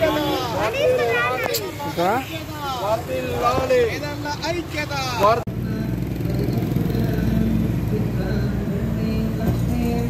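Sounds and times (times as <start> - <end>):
steady traffic: 0.0 - 10.0.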